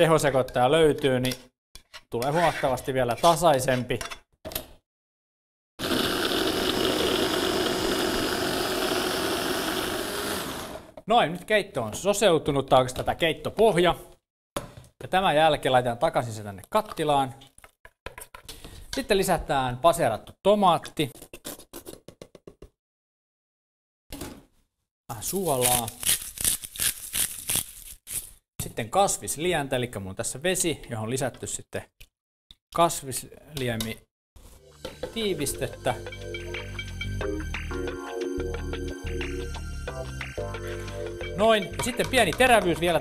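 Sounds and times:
electric food chopper running: 0:05.8 - 0:11.0.

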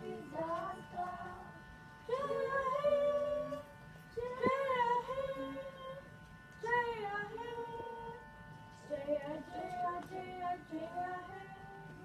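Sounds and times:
girl singing long notes: 0:00.0 - 0:06.0.

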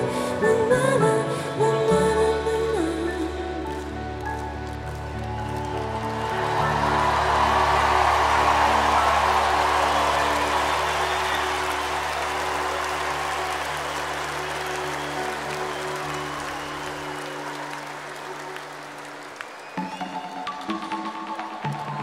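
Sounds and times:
crowd cheering and applauding: 0:02.7 - 0:22.0.

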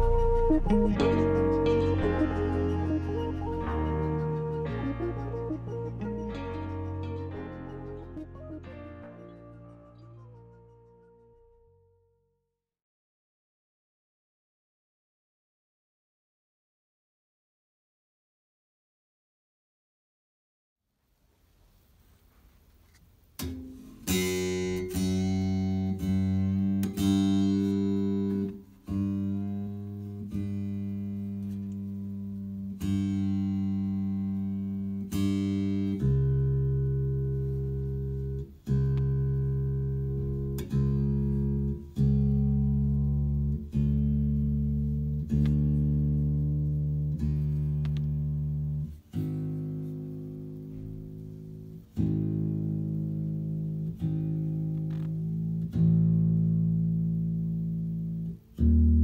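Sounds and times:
bass guitar string plucks: 0:00.0 - 0:11.2, 0:24.4 - 0:59.0.

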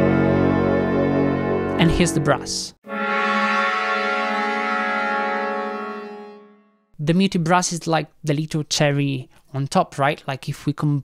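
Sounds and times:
muted brass chord: 0:00.0 - 0:07.0.

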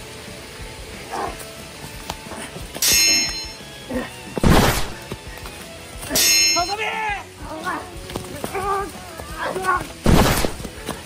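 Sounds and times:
swords clashing: 0:02.8 - 0:03.6, 0:06.1 - 0:06.8, 0:10.1 - 0:10.6
fighters shouting: 0:06.1 - 0:10.0.

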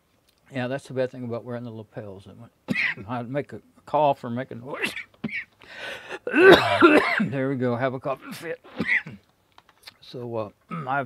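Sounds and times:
man coughing: 0:02.7 - 0:03.1, 0:04.8 - 0:07.4, 0:08.2 - 0:09.2, 0:10.7 - 0:11.0.

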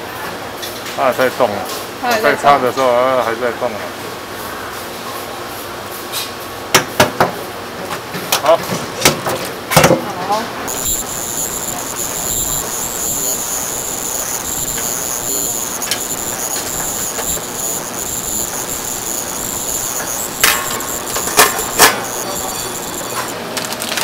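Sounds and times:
thin high whine: 0:10.7 - 0:23.6.

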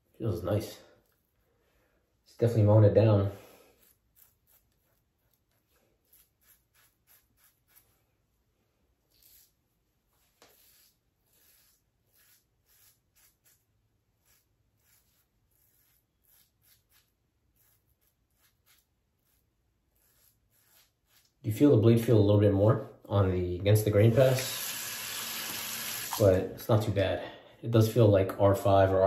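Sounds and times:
razor cutting stubble: 0:03.7 - 0:07.9, 0:10.4 - 0:21.4.

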